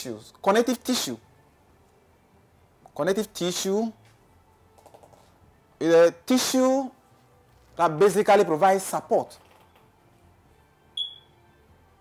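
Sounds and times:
short high-pitched ping: 11.0 - 11.3.

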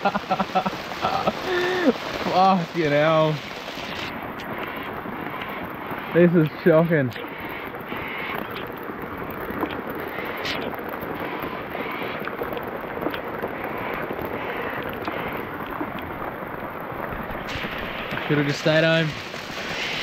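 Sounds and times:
heavy rain on water: 0.0 - 20.0
raindrops tapping close by: 0.0 - 20.0.

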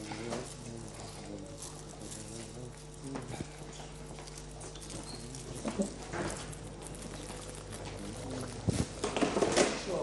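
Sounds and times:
footsteps and shuffling on floor: 0.0 - 9.9
steady electrical hum: 0.0 - 10.0.

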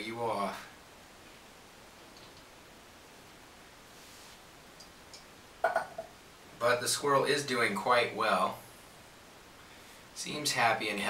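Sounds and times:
soft rustle: 0.6 - 4.8.

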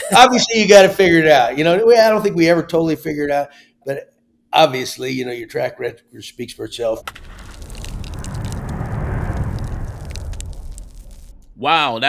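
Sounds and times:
crackling noise rush: 6.7 - 11.7.

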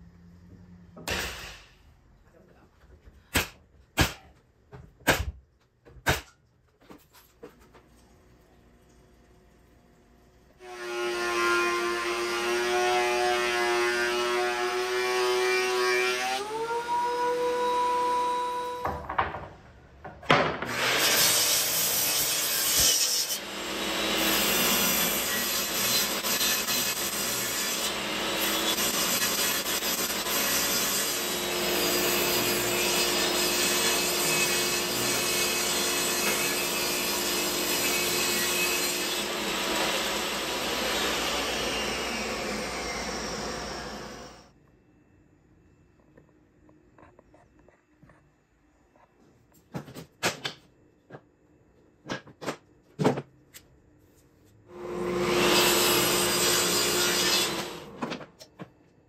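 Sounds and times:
table saw cutting wood: 10.6 - 18.9, 20.6 - 44.5, 54.7 - 58.2.

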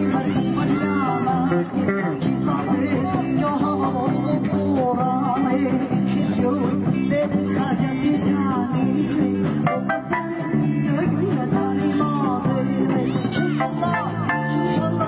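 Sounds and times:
band music with guitar: 0.0 - 15.0.

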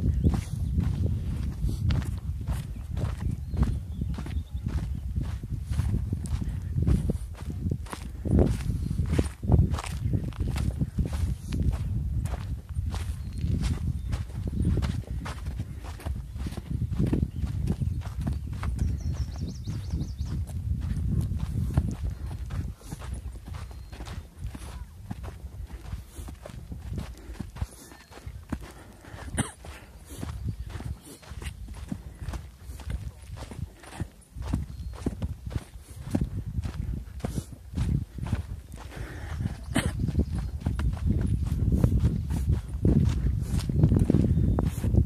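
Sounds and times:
footsteps crunching on dirt trail: 0.0 - 45.0.

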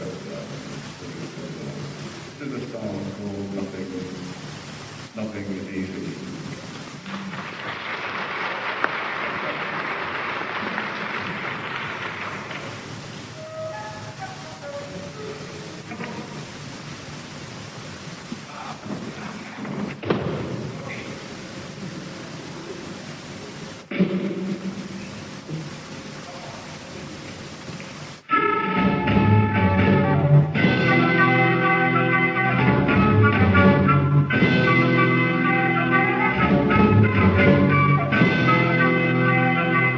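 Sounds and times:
crowd noise: 5.9 - 28.6
audience applauding and cheering: 7.0 - 15.1
scattered instrument notes: 13.4 - 15.7.

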